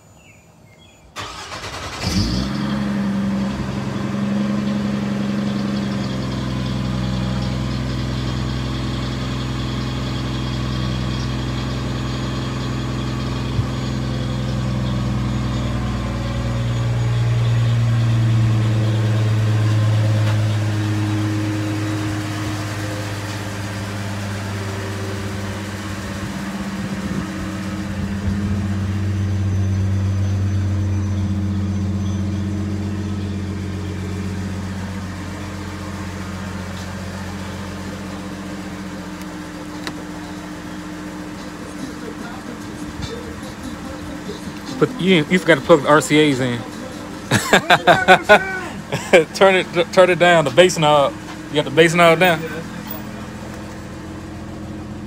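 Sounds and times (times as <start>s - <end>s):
car engine starting and idling: 0.2s - 55.0s.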